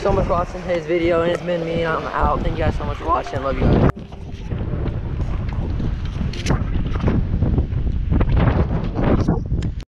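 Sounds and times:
wind buffeting microphone: 0:00.0 - 0:09.8.

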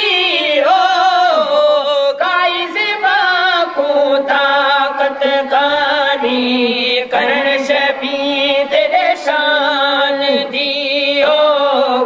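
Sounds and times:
men singing a devotional song: 0:00.0 - 0:12.0.

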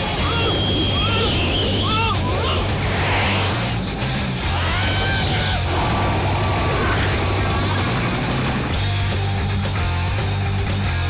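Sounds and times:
action film music with bass: 0:00.0 - 0:11.0
rushing wind: 0:00.6 - 0:07.9.

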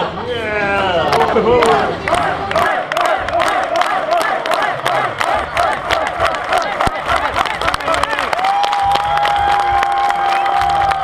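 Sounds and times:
crowd cheering and clapping: 0:01.0 - 0:11.0.

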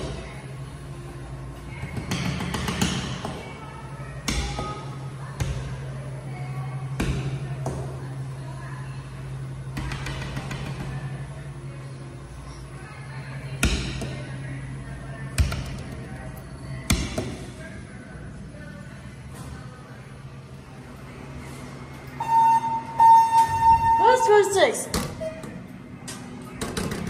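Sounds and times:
elevator arrival tone: 0:22.0 - 0:24.6.

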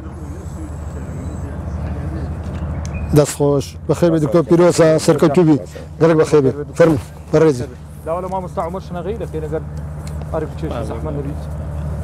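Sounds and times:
faint voices: 0:00.0 - 0:12.0
low steady rumble: 0:00.0 - 0:12.0.

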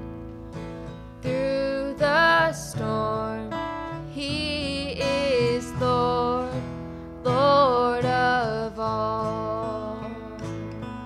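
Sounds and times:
acoustic bass guitar: 0:00.0 - 0:11.0
acoustic guitar: 0:00.0 - 0:11.0.

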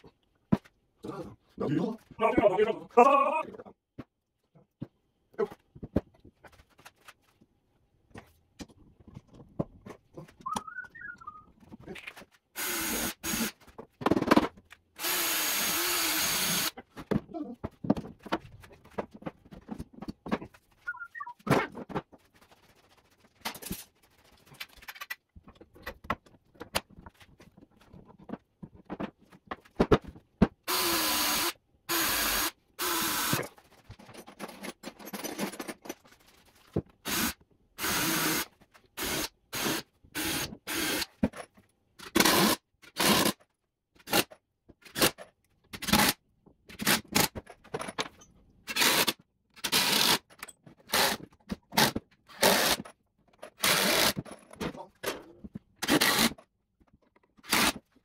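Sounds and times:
tools scraping and knocking: 0:08.1 - 0:10.7, 0:13.5 - 0:14.8, 0:16.8 - 0:20.8, 0:23.2 - 0:30.6, 0:33.3 - 0:37.0
cordless drill running: 0:12.6 - 0:13.5, 0:15.0 - 0:16.7, 0:30.7 - 0:33.4, 0:37.1 - 0:38.4.

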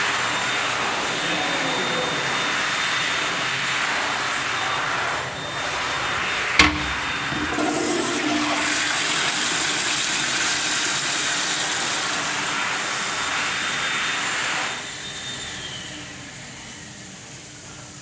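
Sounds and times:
toilet flushing water rush: 0:05.6 - 0:13.2
faint falling whistle: 0:14.8 - 0:17.0.

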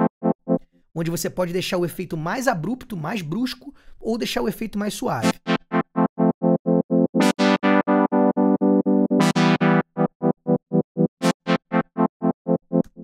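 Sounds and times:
pulsing synthesizer chord: 0:05.2 - 0:13.0.

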